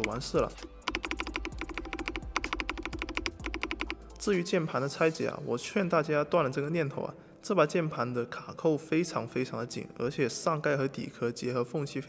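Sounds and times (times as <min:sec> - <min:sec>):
mechanical keyboard typing: 0:00.0 - 0:04.3.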